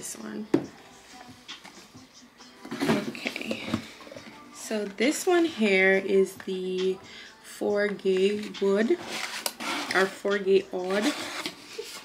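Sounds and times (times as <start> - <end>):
box rustling: 2.6 - 4.9.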